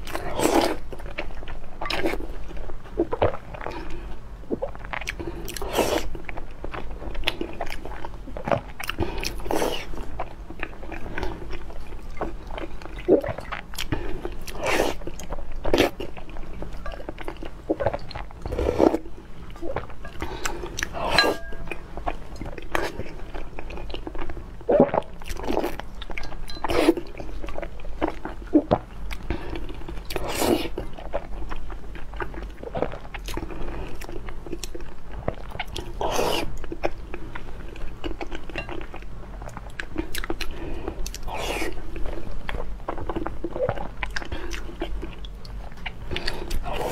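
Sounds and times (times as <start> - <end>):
chewing food: 0.0 - 46.9.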